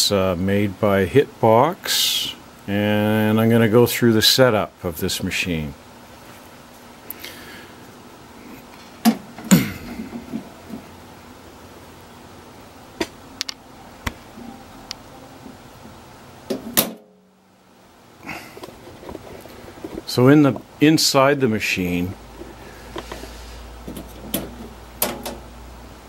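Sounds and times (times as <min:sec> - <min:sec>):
knocks and clicks on sheet metal: 0:23.9 - 0:25.4.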